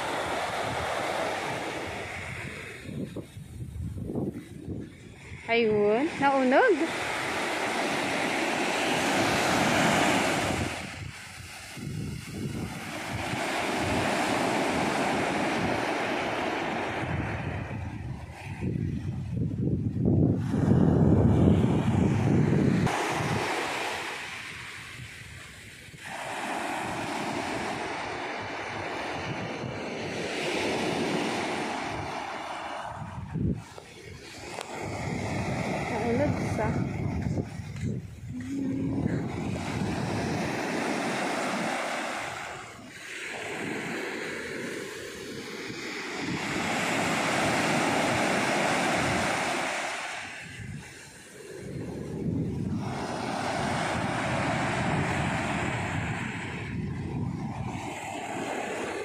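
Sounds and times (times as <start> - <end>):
small waves breaking on beach: 0.0 - 59.0
wind rumbling on microphone: 0.0 - 59.0.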